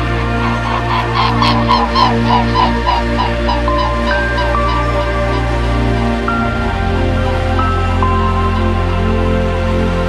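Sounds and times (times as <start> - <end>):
soft synth music: 0.0 - 10.0.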